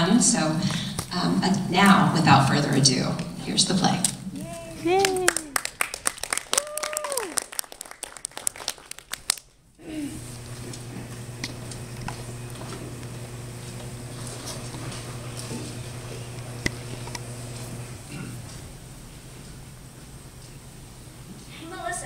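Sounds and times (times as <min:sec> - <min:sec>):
low hum in hall: 0:00.0 - 0:22.0
audience whoops: 0:04.4 - 0:05.6, 0:06.3 - 0:07.6
audience applause: 0:04.4 - 0:09.5.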